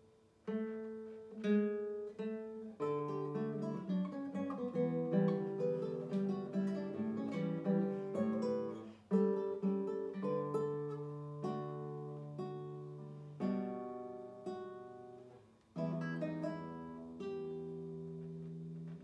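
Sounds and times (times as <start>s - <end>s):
fingerpicked nylon-string guitar: 0.0s - 19.0s.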